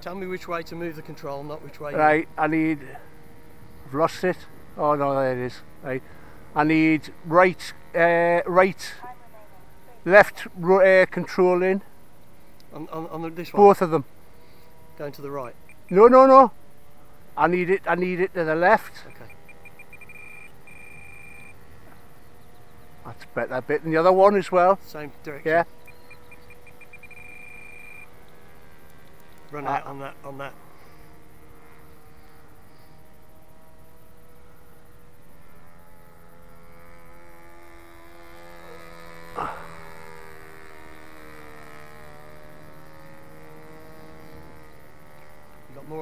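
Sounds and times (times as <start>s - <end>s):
faint steady hum: 0.0s - 46.0s
model plane motor droning: 0.0s - 46.0s
transmitter long high beep: 19.2s - 21.6s, 25.9s - 28.1s.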